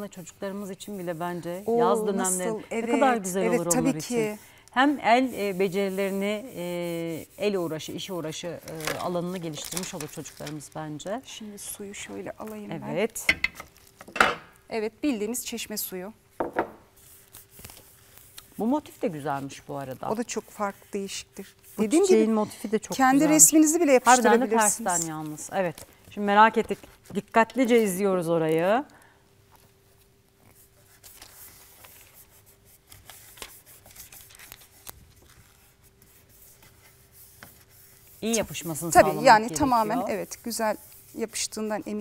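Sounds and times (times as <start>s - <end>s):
fingertips rubbing crinkling film: 0.0s - 14.0s, 16.9s - 28.8s, 29.6s - 42.0s.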